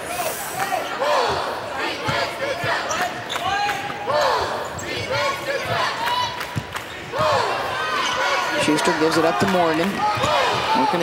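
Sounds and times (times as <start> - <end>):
voices in an arena: 0.0 - 11.0
sneakers squeaking: 1.2 - 8.7.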